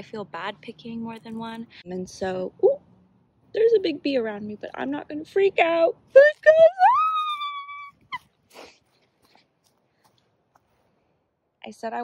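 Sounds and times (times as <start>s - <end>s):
woman squealing in alarm: 6.2s - 8.2s
woman squeaking: 6.2s - 8.3s.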